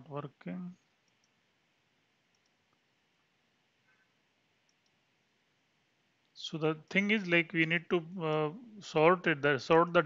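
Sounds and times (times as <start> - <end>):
computer mouse clicks: 1.0 - 1.4, 2.3 - 2.8, 4.6 - 5.0.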